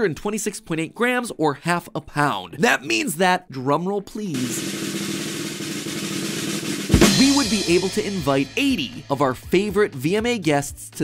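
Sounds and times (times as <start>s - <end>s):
snare drum roll: 4.4s - 9.3s
sharp accented snare hit: 4.4s - 9.4s.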